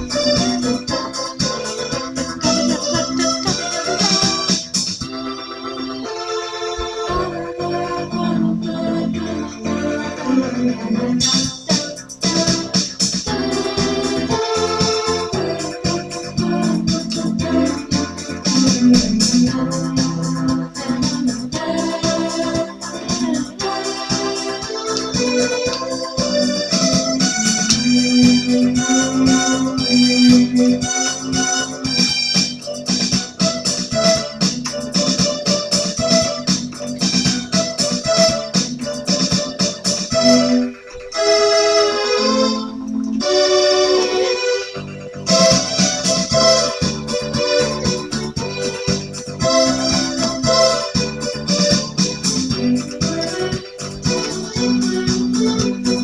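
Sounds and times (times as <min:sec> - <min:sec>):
electronic keyboard playing: 0:00.0 - 0:56.0.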